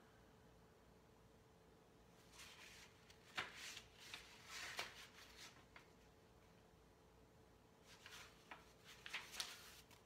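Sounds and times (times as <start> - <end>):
low room hum: 0.0 - 10.0
paper pages turning: 2.2 - 6.1, 7.8 - 10.0.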